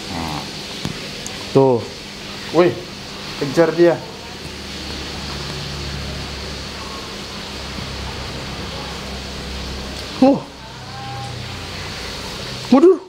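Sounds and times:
aquarium pump humming: 0:00.0 - 0:13.0.

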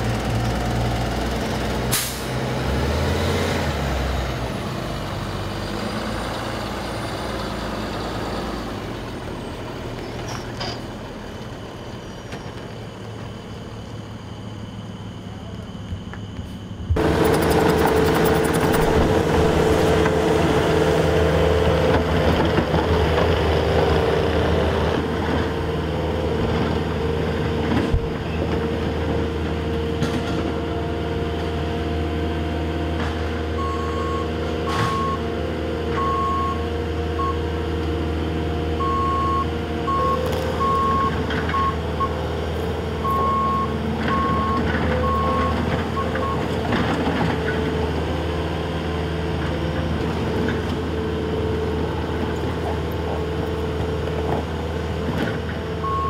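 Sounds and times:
diesel engine running: 0:00.0 - 0:56.0
reversing alarm beeping: 0:33.6 - 0:35.3, 0:36.0 - 0:37.4, 0:38.8 - 0:42.2, 0:43.0 - 0:46.6, 0:55.8 - 0:56.0.

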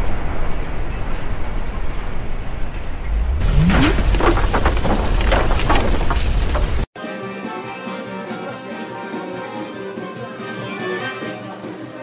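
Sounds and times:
deep explosion rumble: 0:02.8 - 0:06.9
dense crackling and pattering: 0:03.1 - 0:06.9.

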